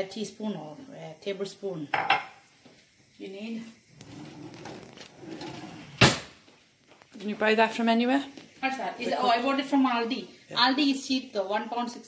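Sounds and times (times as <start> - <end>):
metal spoon knocking on frying pan: 1.9 - 2.3.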